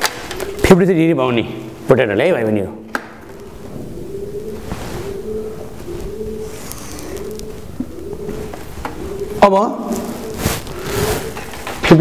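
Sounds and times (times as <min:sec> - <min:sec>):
bird cooing: 0:00.0 - 0:12.0.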